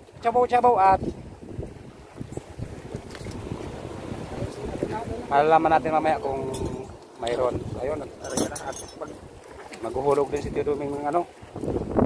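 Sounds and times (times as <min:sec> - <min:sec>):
water sloshing against boat: 0:00.0 - 0:12.0
wind buffeting microphone: 0:00.0 - 0:12.0.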